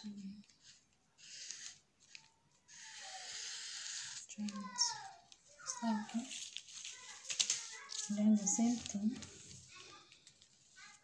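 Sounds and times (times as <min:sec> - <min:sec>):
marker drawn across paper: 0:00.6 - 0:04.6.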